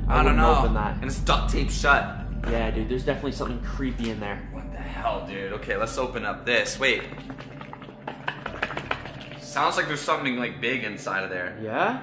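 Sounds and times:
contents knocking in shaken box: 0:07.0 - 0:09.5.

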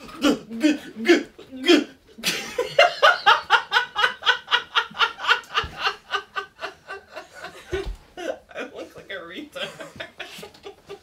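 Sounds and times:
man laughing hard: 0:02.2 - 0:08.5.

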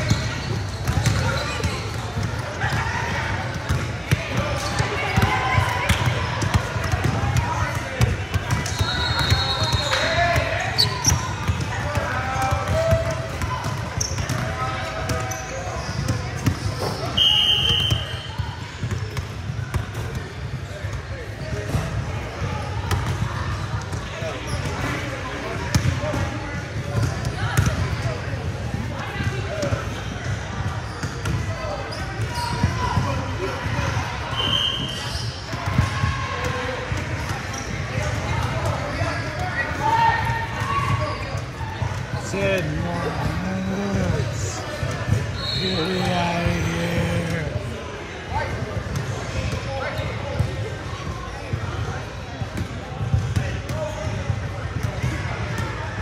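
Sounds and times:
basketballs bouncing on gym court: 0:00.0 - 0:24.9, 0:25.6 - 0:33.9, 0:35.1 - 0:47.7, 0:51.4 - 0:55.8
players' voices: 0:00.0 - 0:34.8, 0:35.8 - 0:56.0.

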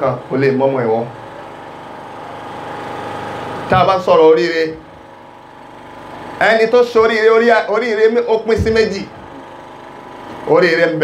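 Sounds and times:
man speaking through loudspeakers: 0:00.0 - 0:01.2, 0:03.7 - 0:04.9, 0:06.4 - 0:09.2, 0:10.4 - 0:11.0
steady background hum: 0:00.0 - 0:11.0.

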